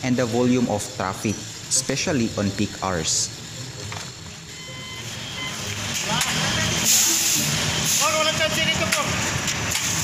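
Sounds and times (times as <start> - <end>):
truck engine rumbling: 0.0 - 10.0
workers calling out: 4.6 - 9.3
burst of hiss: 6.6 - 8.4.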